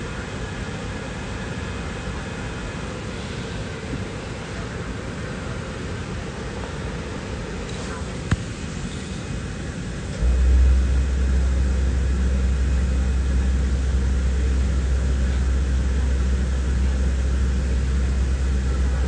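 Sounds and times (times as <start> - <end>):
airliner cabin engine hiss: 0.0 - 19.0
deep low rumble: 10.2 - 19.0.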